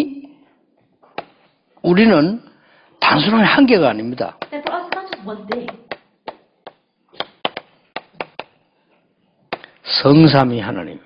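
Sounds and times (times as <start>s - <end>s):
chalk tapping on chalkboard: 4.4s - 8.6s.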